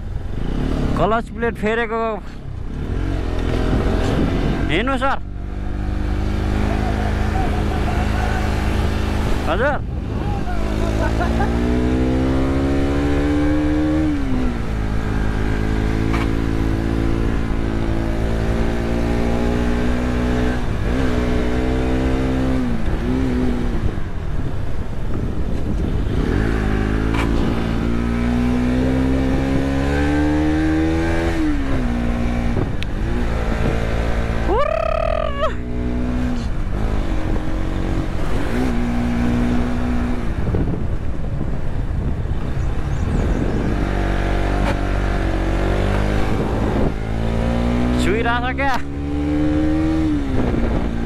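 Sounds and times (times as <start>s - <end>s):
motorcycle engine revving: 0.0s - 1.8s, 2.4s - 51.0s
rushing wind noise: 0.0s - 51.0s.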